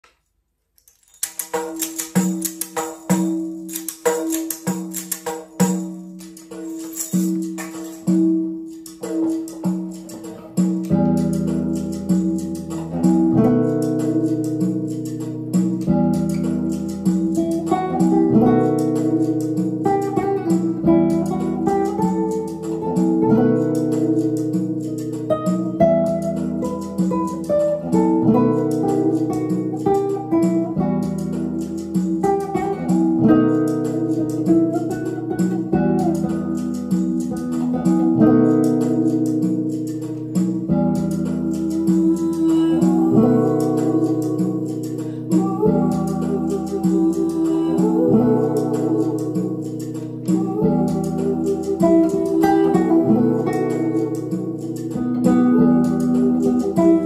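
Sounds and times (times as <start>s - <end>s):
tambourine rhythm: 0.8s - 57.0s
fingerpicked nylon-string guitar: 0.9s - 57.0s.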